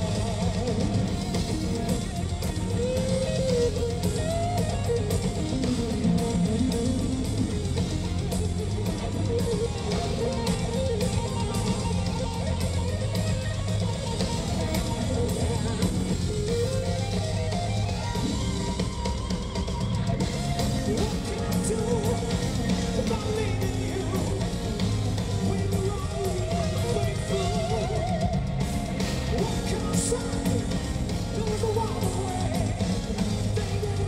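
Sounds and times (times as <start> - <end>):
electric guitar lead lines: 0.0 - 34.0
live hard rock band: 0.0 - 34.0.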